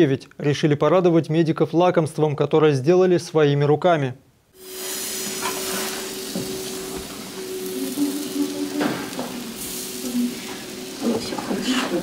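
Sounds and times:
batter sizzling in frying pan: 0:04.6 - 0:12.0
steady hum: 0:04.6 - 0:12.0.

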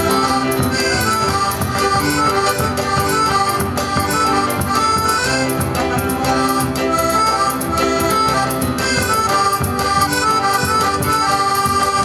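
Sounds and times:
accordion playing a melody: 0:00.0 - 0:12.0
band accompaniment: 0:00.0 - 0:12.0.

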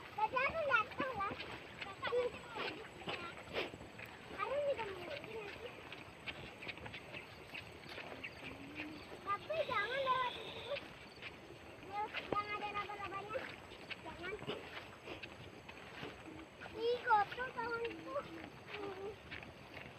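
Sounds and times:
people talking and calling out: 0:00.0 - 0:19.9.

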